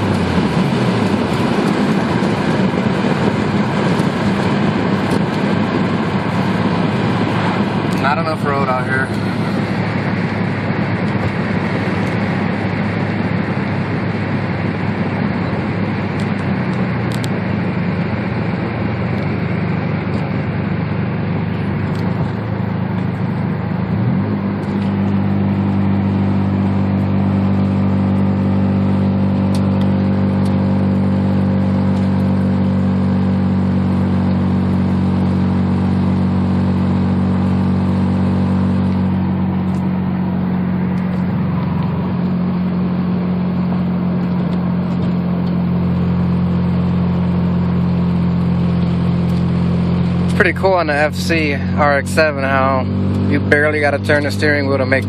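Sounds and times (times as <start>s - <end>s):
rotary engine cruising: 0.0s - 55.0s.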